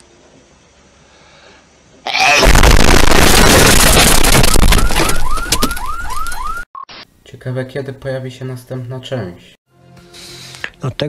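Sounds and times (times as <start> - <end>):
explosion rumble: 2.4 - 4.9.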